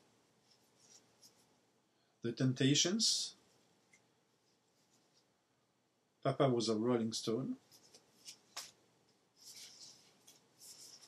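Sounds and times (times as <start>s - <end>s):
record sleeve rustling: 7.6s - 8.8s, 9.4s - 11.0s.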